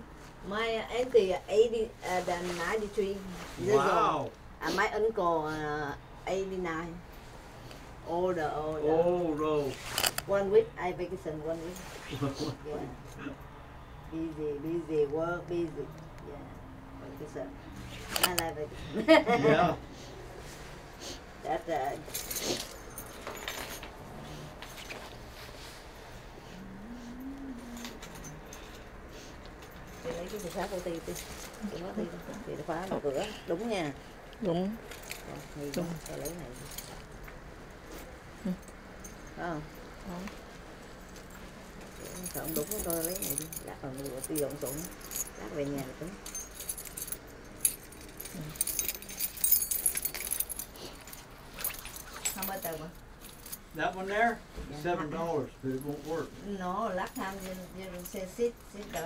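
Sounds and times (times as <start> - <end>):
metal keys jangling: 9.8 - 10.3, 18.0 - 18.5, 21.9 - 25.2, 27.7 - 28.9, 34.8 - 37.4, 40.8 - 53.8.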